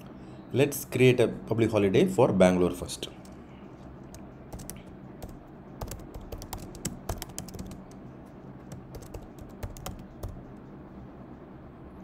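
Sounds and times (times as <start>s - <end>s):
typing on computer keyboard: 4.1s - 8.0s, 8.7s - 10.4s.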